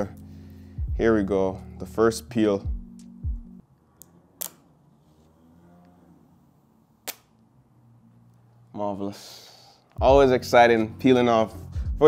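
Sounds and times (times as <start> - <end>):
background music: 0.0 - 3.6, 10.0 - 12.0.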